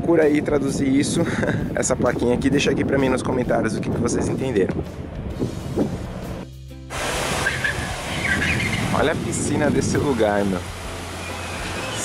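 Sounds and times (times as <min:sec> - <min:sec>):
soft background music: 0:00.0 - 0:07.0, 0:08.2 - 0:12.0
water spraying from fountain jets: 0:06.9 - 0:12.0.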